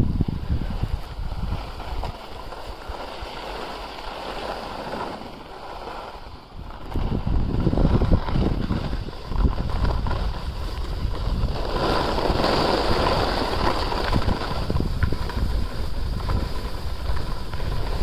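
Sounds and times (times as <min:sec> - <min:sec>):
wind on microphone: 0:00.0 - 0:03.8, 0:06.0 - 0:18.0
skis scraping over snow: 0:00.0 - 0:18.0.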